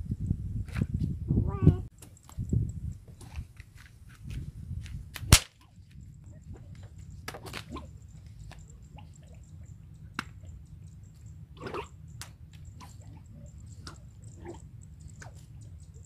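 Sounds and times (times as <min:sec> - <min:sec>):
whip cracking: 0:05.2 - 0:05.6.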